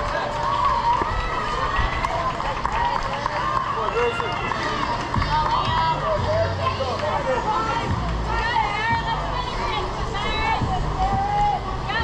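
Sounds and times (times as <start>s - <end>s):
outdoor field noise: 0.0s - 12.0s
people shouting and calling: 0.0s - 12.0s.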